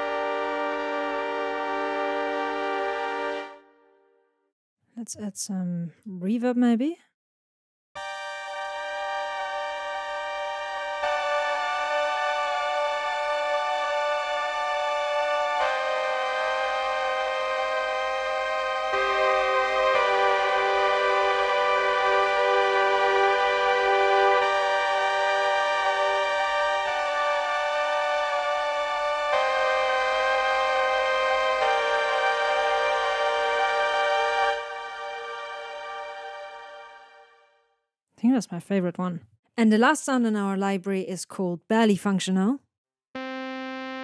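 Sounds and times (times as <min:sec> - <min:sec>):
electronic keyboard chords: 0:00.0 - 0:03.7, 0:08.0 - 0:37.4, 0:43.2 - 0:44.0.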